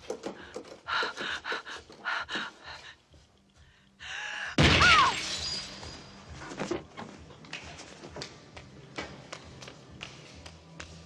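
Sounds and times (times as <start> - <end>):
glass pane shattering: 4.6 - 6.2
falling glass shards: 5.0 - 6.2.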